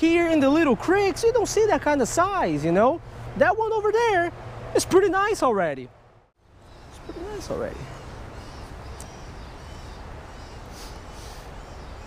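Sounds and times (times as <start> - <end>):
wind: 0.0 - 12.0
small birds chirping: 6.4 - 12.0.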